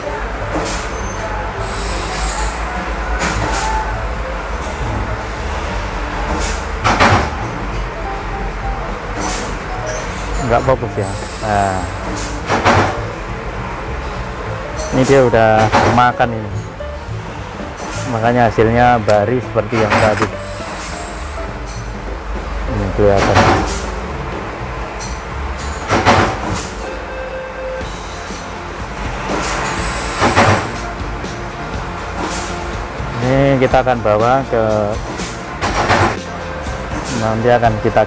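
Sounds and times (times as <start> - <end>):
workshop machine humming: 0.0 - 38.0.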